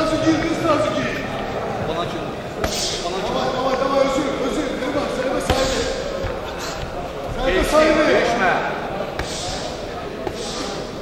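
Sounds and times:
boxing punches landing: 0:05.4 - 0:06.4.

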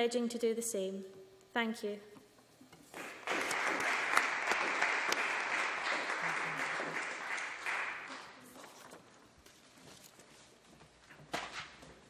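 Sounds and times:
audience applauding: 0:03.0 - 0:08.6.

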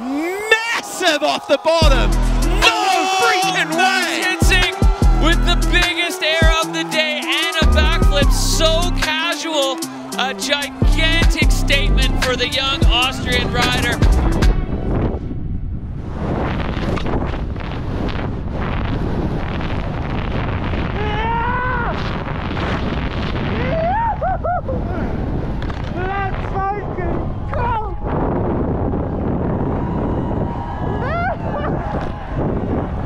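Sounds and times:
person whooping: 0:00.0 - 0:11.4, 0:21.0 - 0:22.0, 0:23.6 - 0:25.2, 0:30.8 - 0:32.2
wind rushing over microphone: 0:11.9 - 0:33.0.

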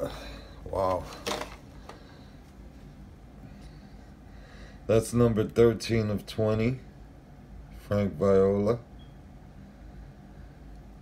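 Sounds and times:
low room hum: 0:00.0 - 0:11.0
plastic case rustling: 0:01.0 - 0:01.7.

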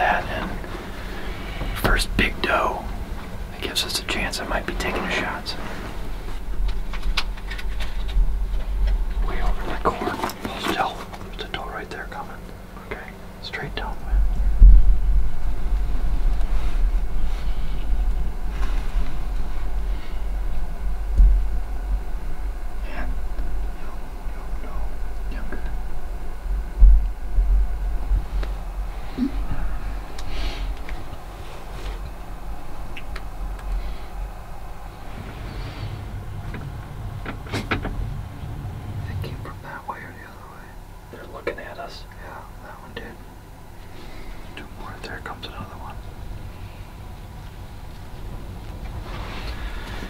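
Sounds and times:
hushed whispering: 0:00.0 - 0:06.3, 0:09.1 - 0:14.4, 0:22.8 - 0:26.0, 0:28.9 - 0:30.8, 0:37.5 - 0:43.3, 0:43.9 - 0:46.0
steady low rumble: 0:00.0 - 0:50.0.

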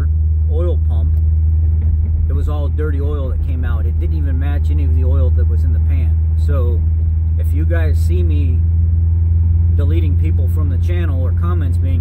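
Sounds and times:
man talking: 0:00.0 - 0:01.2, 0:02.3 - 0:08.6, 0:09.8 - 0:12.0
car engine drone: 0:00.0 - 0:12.0
road noise: 0:00.0 - 0:12.0.

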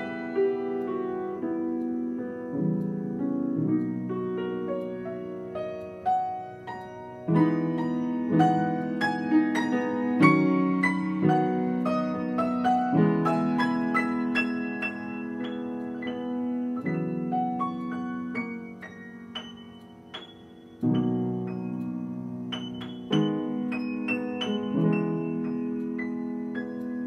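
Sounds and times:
upright piano slow piece: 0:00.0 - 0:27.0.

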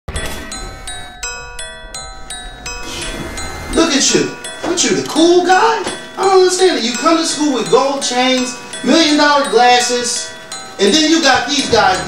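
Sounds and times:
ringing chime melody: 0:00.1 - 0:12.0
steady low hum: 0:00.5 - 0:07.8.

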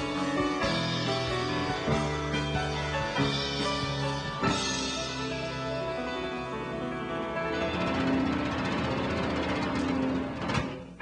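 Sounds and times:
rapid drum roll: 0:07.4 - 0:11.0.

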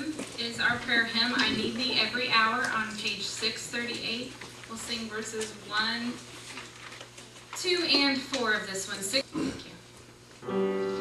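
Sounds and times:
woman speaking: 0:00.0 - 0:06.2, 0:07.6 - 0:09.8.

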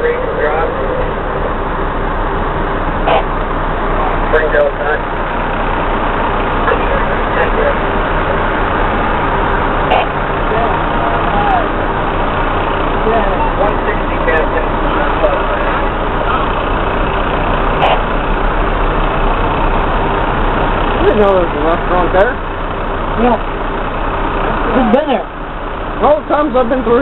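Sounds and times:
faint voices: 0:00.0 - 0:02.3, 0:03.0 - 0:18.2
truck engine droning: 0:00.0 - 0:27.0.

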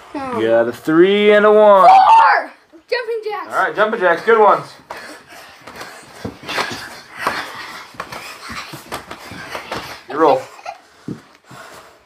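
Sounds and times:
clothes rustling: 0:03.5 - 0:12.0
feet thumping on carpet: 0:04.8 - 0:11.9
heavy breathing: 0:04.8 - 0:12.0.

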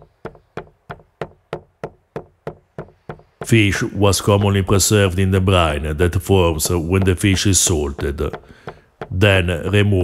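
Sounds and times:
stone pestle pounding in mortar: 0:00.2 - 0:03.7, 0:06.2 - 0:10.0.

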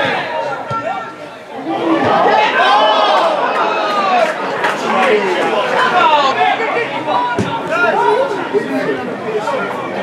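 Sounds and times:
crowd calling and chattering: 0:00.0 - 0:10.0.

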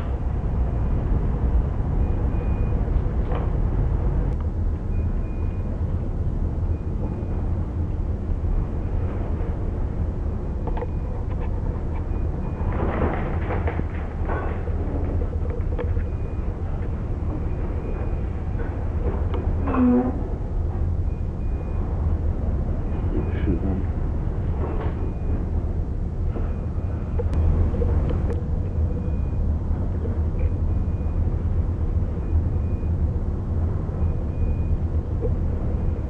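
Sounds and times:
ship low rumble: 0:00.0 - 0:36.0
clatter: 0:10.6 - 0:16.3.

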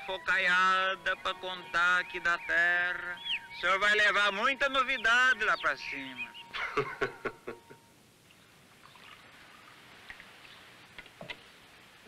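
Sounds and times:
flowing river water hiss: 0:08.0 - 0:12.0.

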